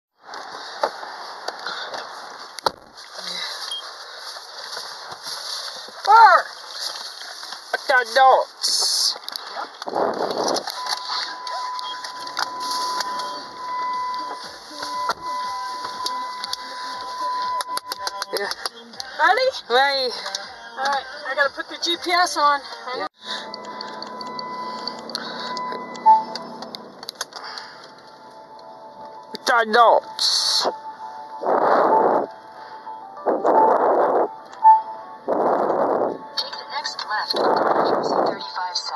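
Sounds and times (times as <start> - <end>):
faint steady tone: 10.7 - 17.8, 23.2 - 27.0
short electronic beep: 10.7 - 18.4, 23.2 - 26.8
sharp clicks: 23.4 - 28.0.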